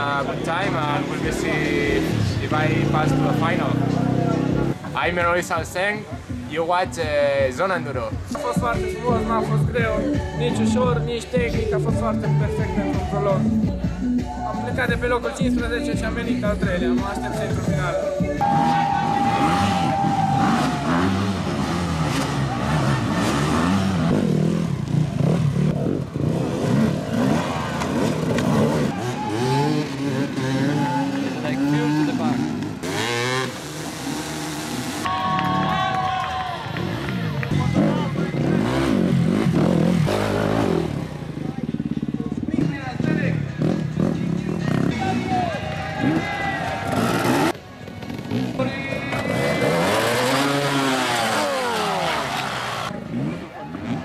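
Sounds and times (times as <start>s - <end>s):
people's voices: 0.0s - 26.1s, 27.1s - 33.8s, 35.0s - 54.0s
dirt bike engines revving: 0.0s - 54.0s.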